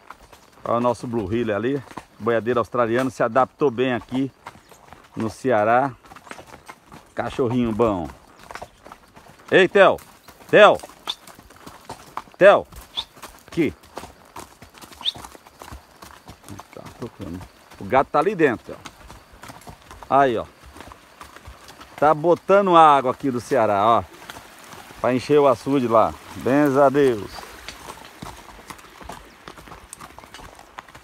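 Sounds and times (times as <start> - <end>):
horse hooves clip-clopping on dirt: 0.0 - 31.0.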